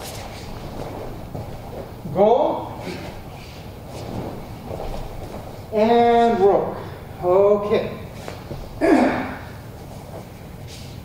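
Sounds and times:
fabric rustling on mat: 0.0 - 2.1, 2.8 - 6.7
soft thuds on padded mat: 4.0 - 5.6.

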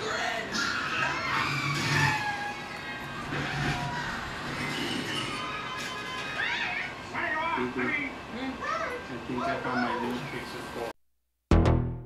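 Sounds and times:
people screaming on tv: 0.5 - 7.0.

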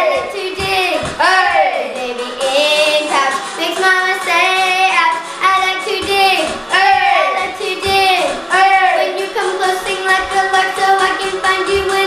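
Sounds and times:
child singing: 0.0 - 12.0.

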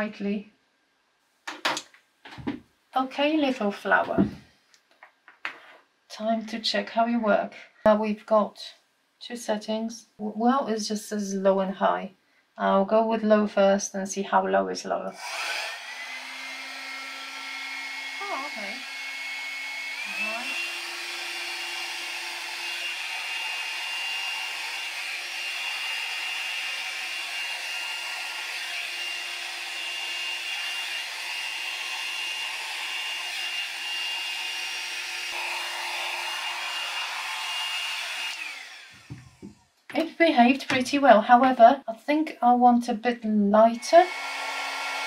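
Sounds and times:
hair dryer whine and air rush: 15.1 - 39.7, 43.8 - 45.0.

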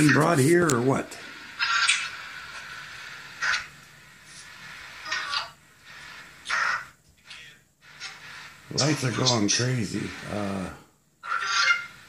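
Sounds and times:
faint steady hiss: 0.0 - 11.2
harsh raspy bursts: 1.5 - 12.0.

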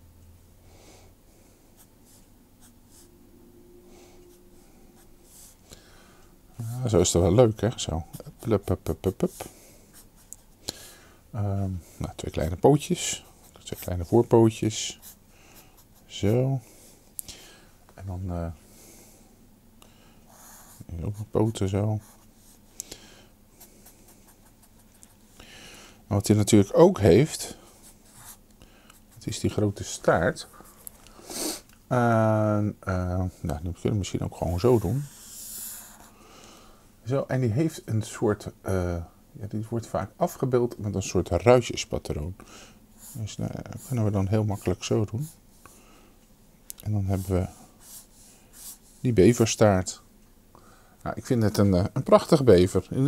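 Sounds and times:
marker scratching on paper: 27.8 - 28.4.

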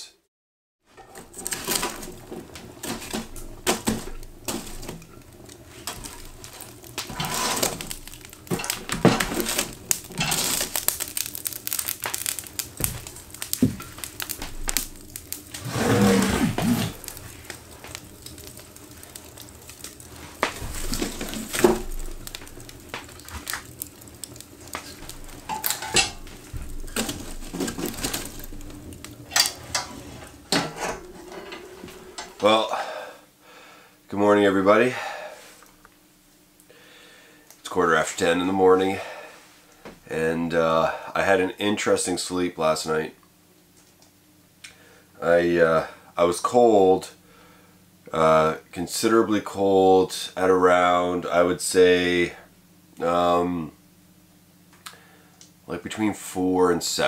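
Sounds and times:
metal stove door scraping: 0.9 - 18.6, 24.7 - 32.6
metallic clanks and knocks: 29.3 - 32.4.

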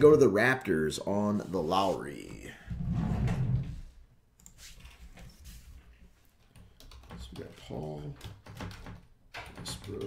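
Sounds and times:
cards tapping and clicking: 6.6 - 10.0.

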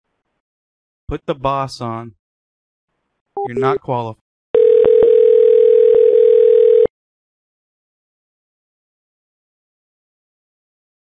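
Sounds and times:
steady low telephone tone: 4.6 - 6.9.

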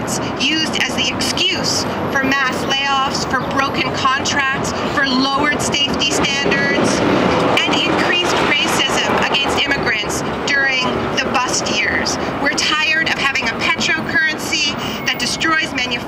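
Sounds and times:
city traffic hum: 0.0 - 16.0
woman speaking at a microphone: 0.0 - 16.0.

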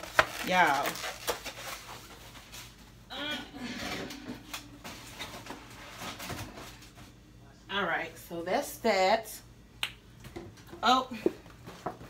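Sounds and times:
groceries knocking and rustling: 0.0 - 3.0, 3.9 - 7.2, 11.4 - 12.0.

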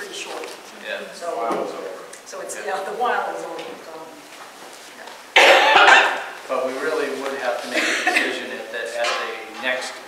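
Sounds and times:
loud cough: 5.4 - 6.4, 7.7 - 8.5.

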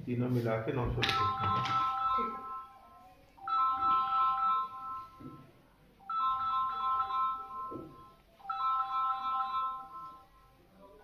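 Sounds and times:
electronic ringtone tune: 1.1 - 11.0.

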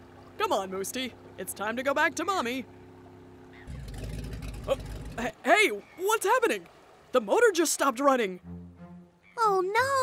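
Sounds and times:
outboard motor putter: 0.0 - 7.8.

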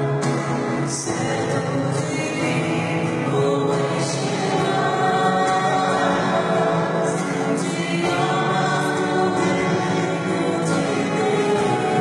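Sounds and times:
choir singing long notes: 1.8 - 12.0.

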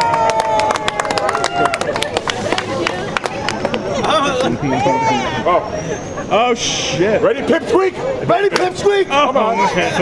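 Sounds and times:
small crowd clapping: 0.0 - 3.8
voices chattering: 1.2 - 10.0.

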